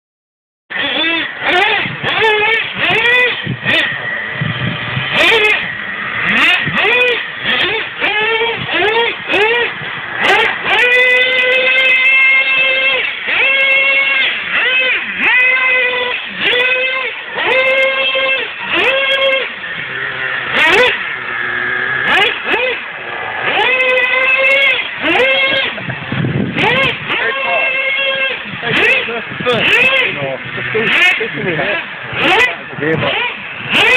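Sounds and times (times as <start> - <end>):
rc truck engine revving: 0.7 - 33.9.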